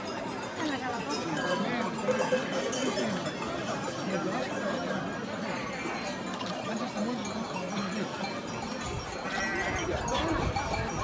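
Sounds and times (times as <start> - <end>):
crowd noise: 0.0 - 11.0
sheep bells clanking: 0.0 - 11.0
sheep bleating: 9.2 - 9.9.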